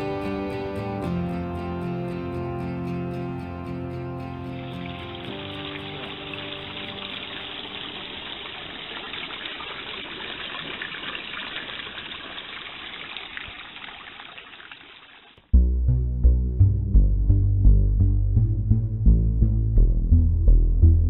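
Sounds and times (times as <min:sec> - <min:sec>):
spring water trickling in stone channel: 0:04.6 - 0:15.5.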